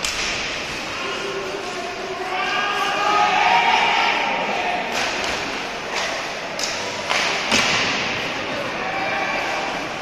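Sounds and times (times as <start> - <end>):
faint shouts in a hall: 0.9 - 4.9.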